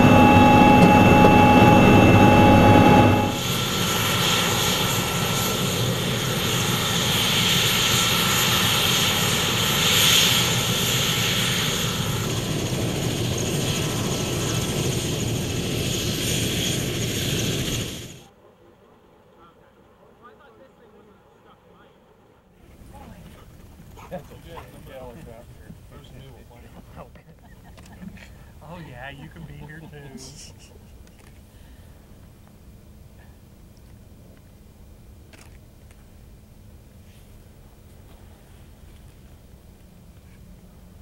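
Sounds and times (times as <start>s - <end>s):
helicopter turbine and rotor noise: 0.0s - 41.0s
people talking and laughing: 22.8s - 31.4s.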